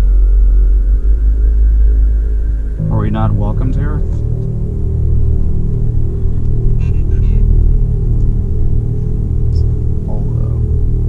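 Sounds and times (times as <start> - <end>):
low rumble in car cabin: 0.0 - 11.0.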